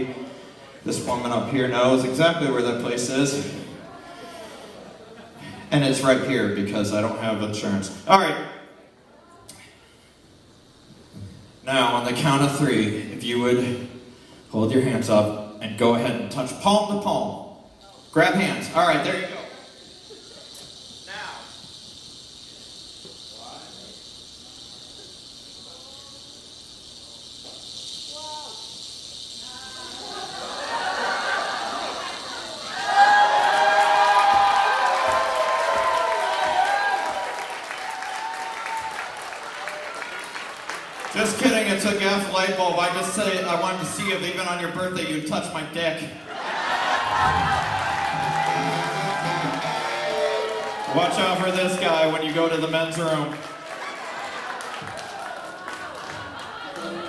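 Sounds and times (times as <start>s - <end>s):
steady high hiss: 0.0s - 57.0s
audience voices murmuring: 46.4s - 51.0s
guitar: 46.9s - 51.8s.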